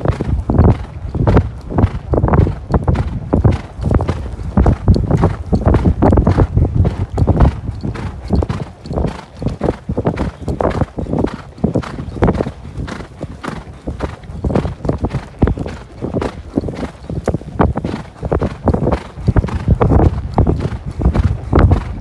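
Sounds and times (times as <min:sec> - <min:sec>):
hoofbeats in sand: 0:00.0 - 0:22.0.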